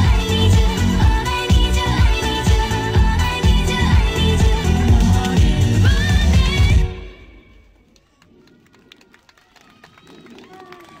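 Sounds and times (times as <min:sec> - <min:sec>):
pop song backing track: 0:00.0 - 0:07.4.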